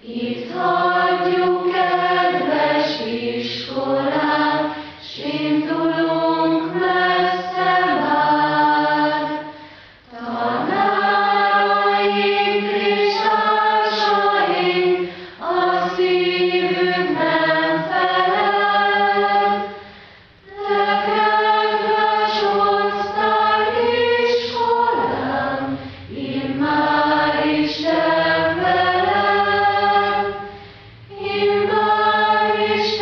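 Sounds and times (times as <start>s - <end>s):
choir singing sustained chords: 0.0s - 33.0s.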